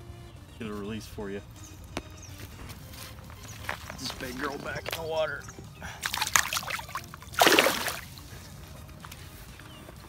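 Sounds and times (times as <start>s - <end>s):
water sloshing and splashing: 6.0s - 8.4s.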